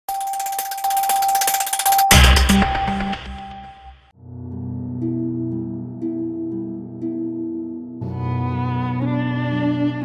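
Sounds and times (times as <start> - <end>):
bright glittering ticks: 0.1 - 3.0
steady high electronic tone: 0.1 - 4.1.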